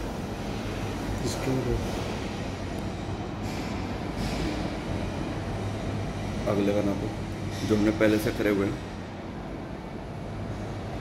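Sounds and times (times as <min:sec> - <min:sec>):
low mechanical hum and rumble: 0:00.0 - 0:11.0.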